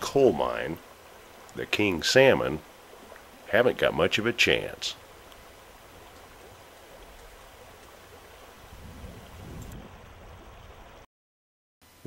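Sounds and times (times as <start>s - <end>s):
river current rushing: 0.0s - 11.0s.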